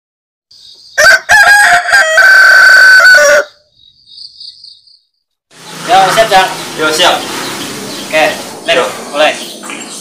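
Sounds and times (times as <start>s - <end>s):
rooster crowing: 1.0s - 3.7s
faint bird chirps: 3.6s - 5.8s.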